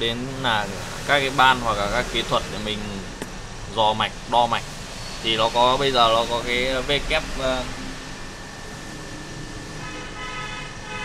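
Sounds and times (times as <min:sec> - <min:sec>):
low background hum: 0:00.0 - 0:11.0
steady high-pitched tone: 0:00.0 - 0:11.0.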